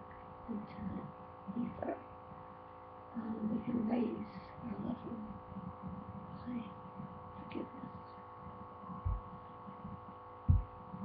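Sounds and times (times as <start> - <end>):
electrical hum: 0.0 - 11.0
dull thumps on microphone: 9.0 - 9.3, 10.5 - 10.7.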